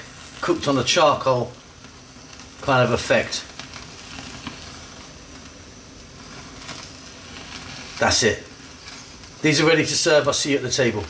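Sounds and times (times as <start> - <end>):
food sizzling and crackling: 0.0 - 11.0
gas burner flame hissing: 0.0 - 11.0.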